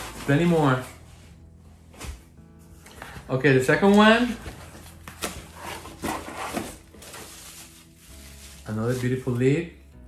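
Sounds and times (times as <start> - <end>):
cardboard scraping rustles: 0.0 - 1.4, 3.9 - 9.4.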